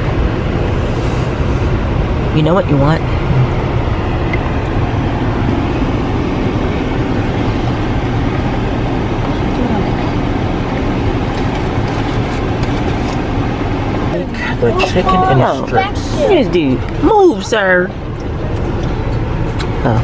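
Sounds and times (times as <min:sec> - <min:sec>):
car idling inside cabin: 0:00.0 - 0:20.0.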